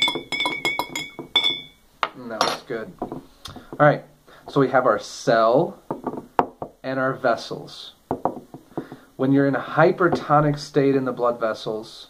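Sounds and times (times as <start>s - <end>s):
spoon clinking in glass: 0.0s - 1.8s.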